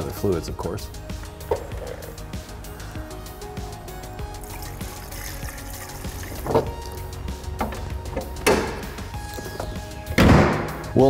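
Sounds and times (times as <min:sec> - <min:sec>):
background music: 0:00.0 - 0:11.0
fluid pouring from plastic jug: 0:04.4 - 0:07.0.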